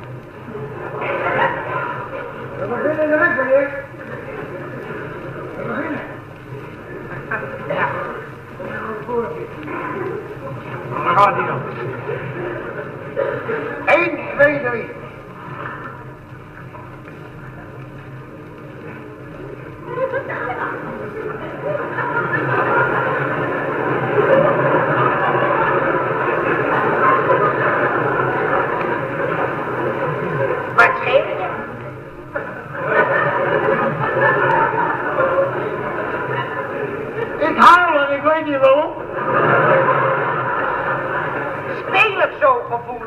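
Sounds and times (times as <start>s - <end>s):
old recording noise: 0.0s - 43.0s
audience laughing: 0.4s - 43.0s.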